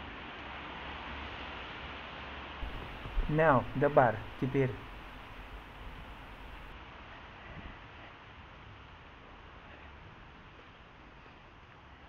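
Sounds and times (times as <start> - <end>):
soft low thump: 2.6 - 6.7
steady background hiss: 2.6 - 6.8.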